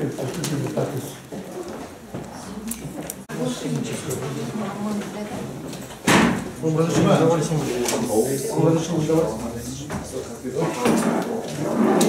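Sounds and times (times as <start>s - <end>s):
sharp knock: 6.1s - 6.5s.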